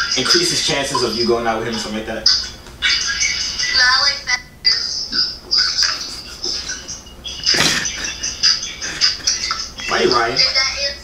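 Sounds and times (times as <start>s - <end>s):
man laughing: 5.9s - 9.7s.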